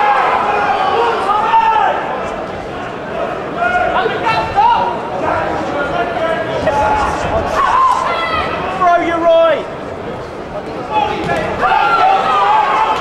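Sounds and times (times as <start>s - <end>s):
spectators shouting: 0.0s - 9.7s, 10.9s - 13.0s
crowd hubbub in a hall: 0.0s - 13.0s.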